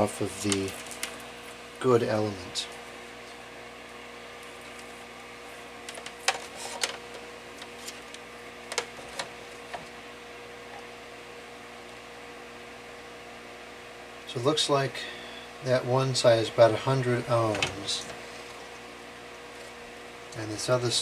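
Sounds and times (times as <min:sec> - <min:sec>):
steady electrical hum: 0:00.0 - 0:21.0.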